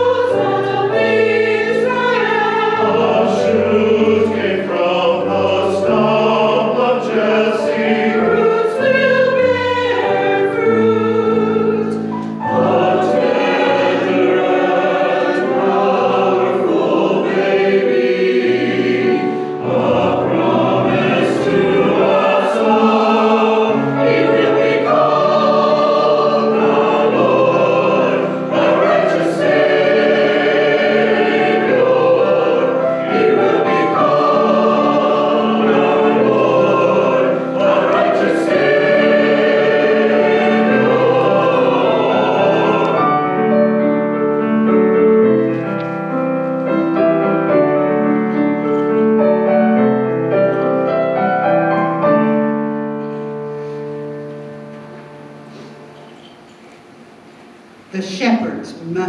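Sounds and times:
church choir singing: 0.0 - 57.9.

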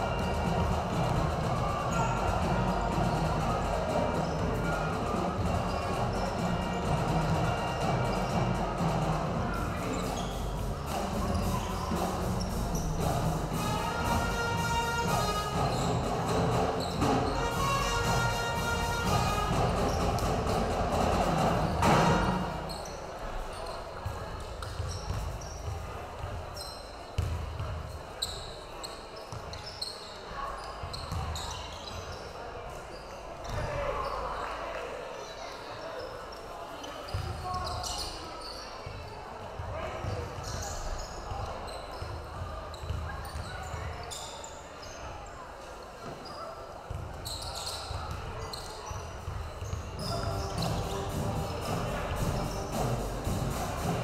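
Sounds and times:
music: 0.0 - 22.7, 50.0 - 54.0
indistinct voices: 0.0 - 23.2, 49.9 - 54.0
sneakers squeaking: 0.0 - 34.6, 35.2 - 54.0
basketball bouncing: 24.6 - 26.3, 27.2 - 27.8, 47.9 - 54.0.

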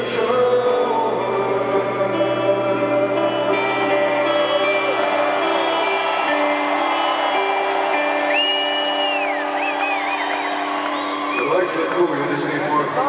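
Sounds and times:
singing voices: 0.0 - 10.8
live rock music: 0.0 - 13.0
crowd cheering: 3.1 - 13.0
crowd member whooping: 4.1 - 11.9.

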